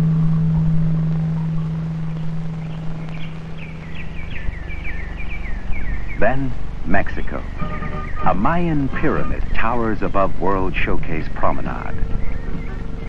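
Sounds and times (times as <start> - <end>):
faint high chirps: 0.0 - 13.0
low held note: 0.0 - 13.0.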